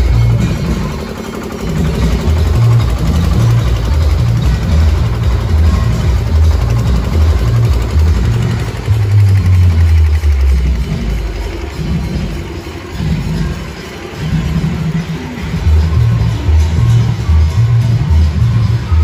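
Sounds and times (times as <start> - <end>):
bass-heavy dj music: 0.0 - 19.0.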